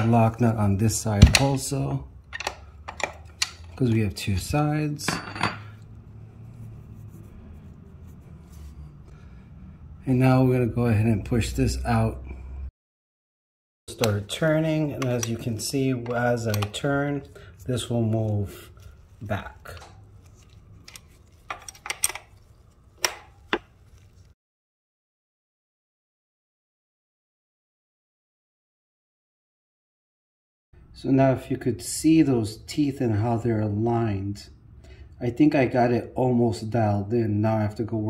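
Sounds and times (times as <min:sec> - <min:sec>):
wrench clicking on metal bolt: 0:02.3 - 0:03.7.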